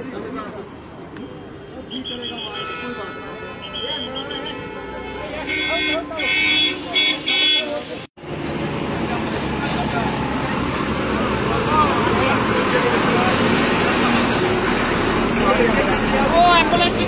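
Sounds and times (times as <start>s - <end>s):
crowd talking: 0.0s - 17.0s
road traffic noise: 0.0s - 17.0s.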